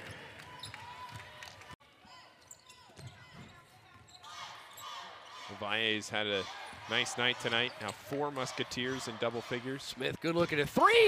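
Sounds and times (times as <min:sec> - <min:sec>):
sneakers squeaking: 0:02.0 - 0:05.5, 0:06.5 - 0:08.2.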